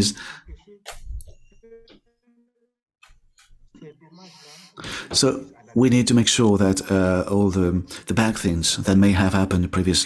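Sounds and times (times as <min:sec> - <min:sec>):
man's garbled voice on call: 0:04.9 - 0:10.0.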